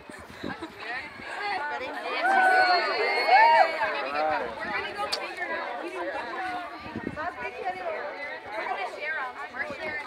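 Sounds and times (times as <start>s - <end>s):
girls chattering: 0.0s - 10.0s.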